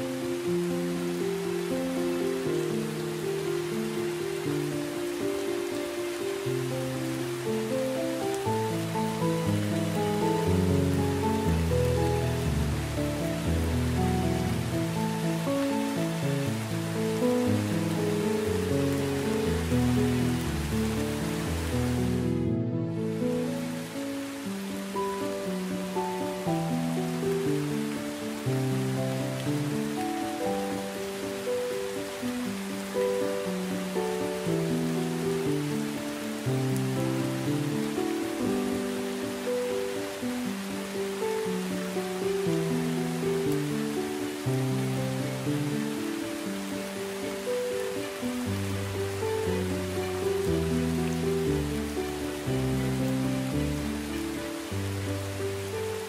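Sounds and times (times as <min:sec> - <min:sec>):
slow melodic music: 0:00.0 - 0:56.0
steady rain hiss: 0:00.0 - 0:56.0.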